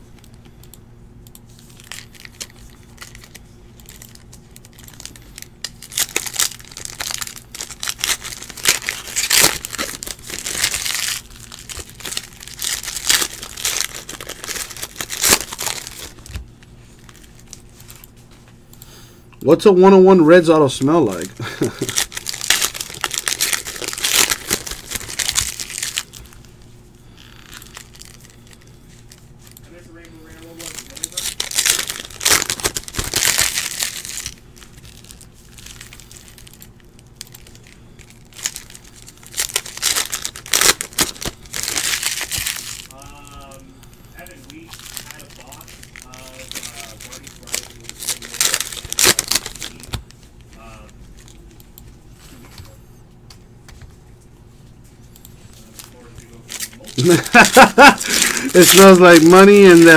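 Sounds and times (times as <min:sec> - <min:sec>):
plastic foil wrappers crinkling and tearing: 0:01.5 - 0:18.2, 0:20.4 - 0:51.6, 0:55.4 - 0:59.9.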